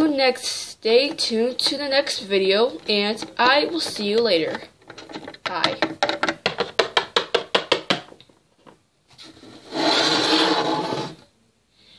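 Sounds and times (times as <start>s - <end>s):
camera handling rubbing scrape: 9.1s - 11.2s.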